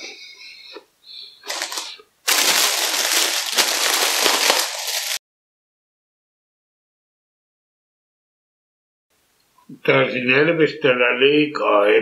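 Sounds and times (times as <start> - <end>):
plastic bag crinkling: 1.4 - 5.2.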